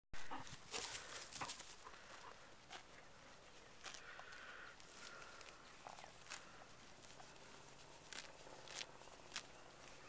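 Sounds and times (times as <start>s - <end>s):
dog paws rustling on grass: 0.2s - 4.2s.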